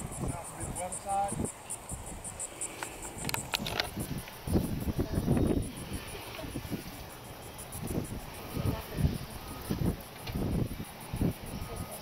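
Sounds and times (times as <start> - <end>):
insect chirping: 0.0 - 12.0
wind buffeting microphone: 0.0 - 12.0.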